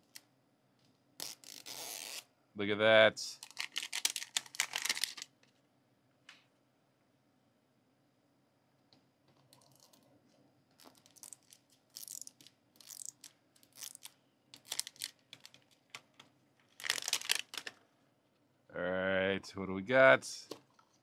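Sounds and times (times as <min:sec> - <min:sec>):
plastic wrapper ripping and crinkling: 0:01.2 - 0:02.2, 0:03.4 - 0:05.3, 0:10.8 - 0:16.0, 0:16.6 - 0:17.8.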